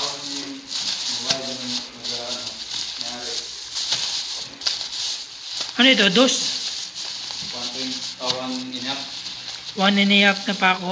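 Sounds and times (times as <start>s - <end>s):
plastic bag crinkling: 0.0s - 10.9s.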